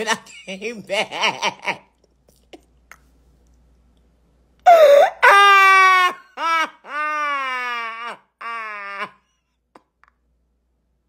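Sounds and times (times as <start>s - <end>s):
person laughing high-pitched: 4.7s - 9.2s.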